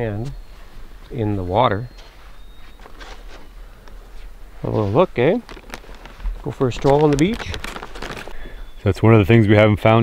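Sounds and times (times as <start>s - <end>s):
feet scuffing on sand: 2.0s - 5.3s.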